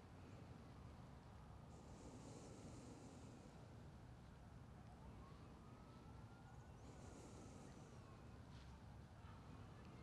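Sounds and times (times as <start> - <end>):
faint distant siren wail: 4.6 - 8.4.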